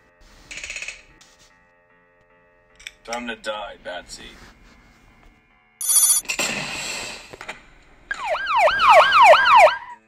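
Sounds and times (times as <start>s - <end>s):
wailing siren-like tone: 8.1s - 10.0s.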